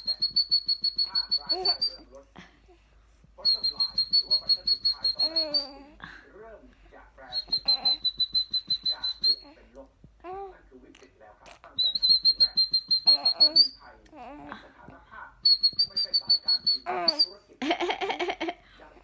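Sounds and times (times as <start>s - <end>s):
high trilling whistle: 0.0s - 2.0s, 3.5s - 5.8s, 7.4s - 9.4s, 11.8s - 13.8s, 15.5s - 17.4s
baby giggling: 5.2s - 6.0s, 13.1s - 14.5s, 16.8s - 18.6s.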